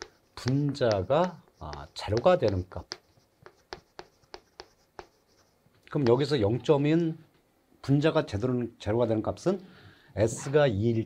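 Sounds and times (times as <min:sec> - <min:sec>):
chalk tapping and scraping: 0:00.0 - 0:06.6.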